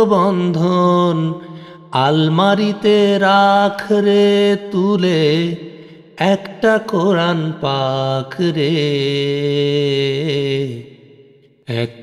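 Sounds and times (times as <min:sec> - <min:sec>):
person singing with vibrato: 0:00.0 - 0:12.0.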